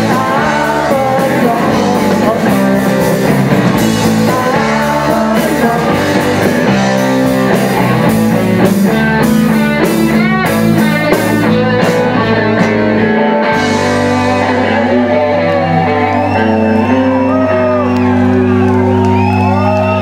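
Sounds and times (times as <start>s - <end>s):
bass guitar: 0.0s - 20.0s
distorted electric guitars: 0.0s - 20.0s
drum kit: 0.0s - 20.0s.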